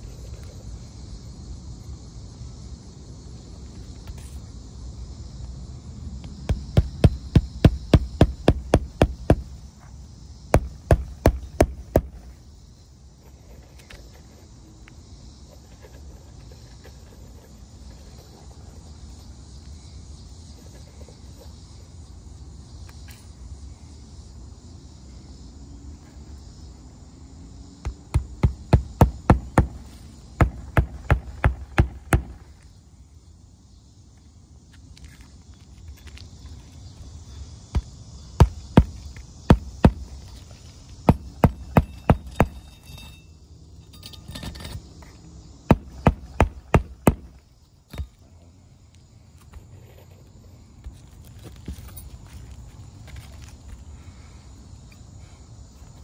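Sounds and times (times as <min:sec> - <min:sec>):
hammer striking roofing nails: 0:06.5 - 0:09.5, 0:10.6 - 0:12.2, 0:27.8 - 0:32.4, 0:37.8 - 0:40.1, 0:41.0 - 0:42.6, 0:45.7 - 0:48.1.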